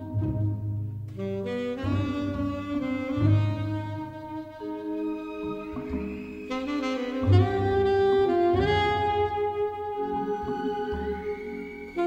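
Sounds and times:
orchestral film score music: 0.0s - 12.0s.

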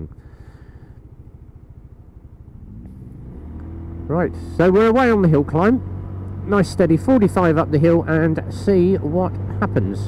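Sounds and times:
scooter engine idling: 0.0s - 8.8s.

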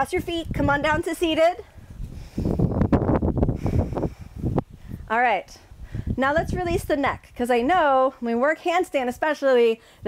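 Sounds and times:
microphone rumbling and rustling: 0.3s - 5.1s.

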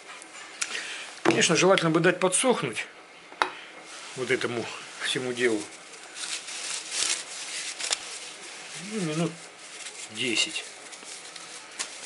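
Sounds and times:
paper rag rustling: 3.8s - 12.0s.

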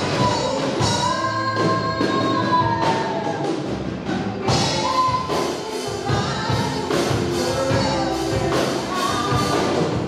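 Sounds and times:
drums with steady beat: 0.0s - 10.0s
woman singing: 0.0s - 10.0s.

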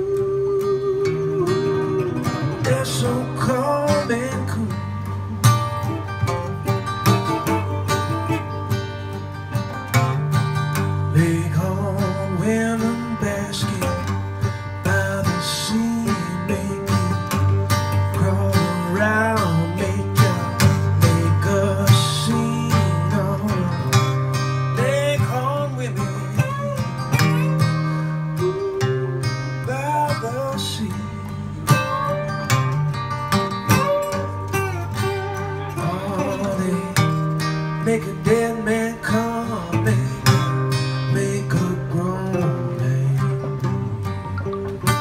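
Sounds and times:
acoustic guitar rhythm: 0.0s - 45.0s
slide resonator guitar solo: 0.0s - 45.0s.

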